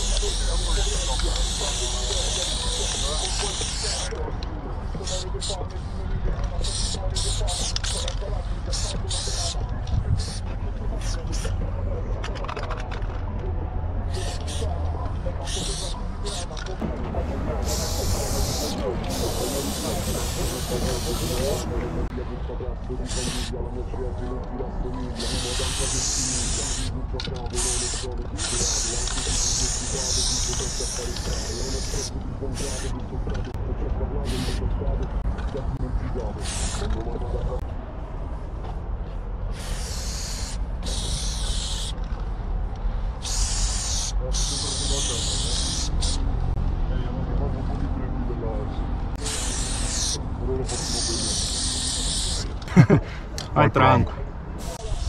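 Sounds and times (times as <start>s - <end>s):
spray paint can hissing: 0.0s - 4.2s, 5.0s - 5.6s, 6.5s - 9.6s, 10.2s - 10.4s, 14.1s - 14.7s, 15.4s - 16.6s, 17.6s - 21.7s, 23.1s - 23.5s, 25.1s - 32.9s, 34.3s - 34.6s, 36.4s - 37.0s, 39.5s - 42.0s, 43.2s - 46.2s, 49.2s - 52.7s, 54.6s - 55.0s.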